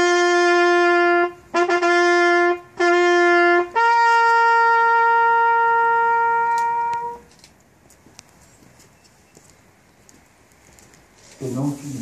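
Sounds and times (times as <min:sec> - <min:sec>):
trumpet holding long note: 0:00.0 - 0:07.3.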